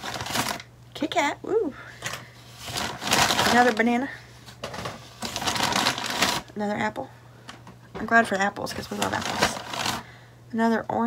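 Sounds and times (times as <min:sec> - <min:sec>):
bag rustling and crinkling: 0:00.0 - 0:00.6, 0:02.4 - 0:06.5, 0:08.7 - 0:10.1.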